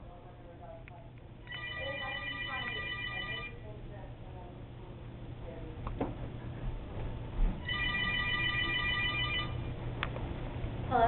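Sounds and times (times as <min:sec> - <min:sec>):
phone ringtone electronic tones: 0:01.5 - 0:03.6, 0:07.6 - 0:09.7.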